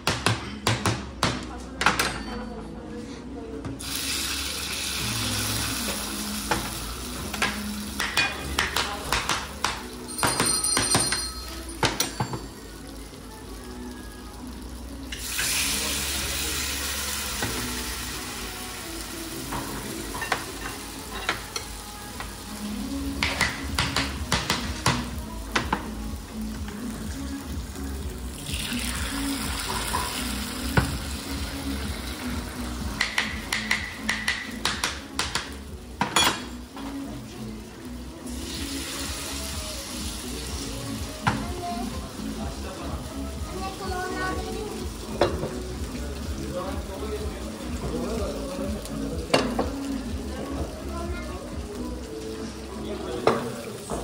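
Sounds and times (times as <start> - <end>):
faint music: 0.0 - 54.0
stew sizzling in stone bowls: 3.8 - 54.0
pottery clinking on plates: 10.0 - 12.7, 36.0 - 36.8.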